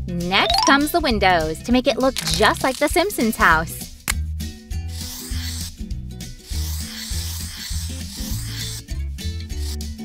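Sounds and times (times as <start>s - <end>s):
marker scratching on cardboard: 4.9s - 5.7s, 6.4s - 8.9s.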